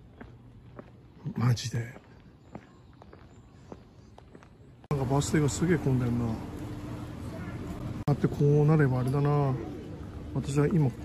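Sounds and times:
footsteps on pavement: 0.0 - 5.4.

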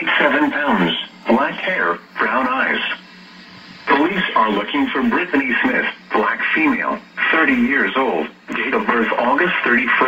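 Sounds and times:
person reading from television: 0.0 - 10.0.

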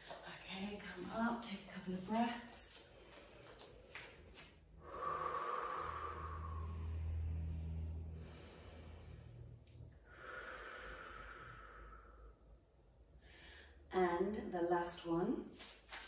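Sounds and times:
woman breathing: 2.9 - 4.0, 4.7 - 13.9.

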